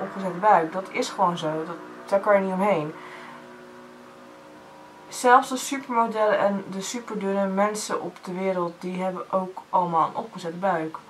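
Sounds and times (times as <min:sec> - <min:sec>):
hum of held tones: 0:00.0 - 0:11.0.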